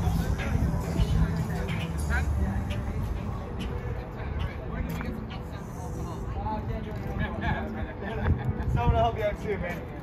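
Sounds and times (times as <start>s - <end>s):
people talking: 0.0s - 10.0s
traffic rumble: 0.0s - 10.0s.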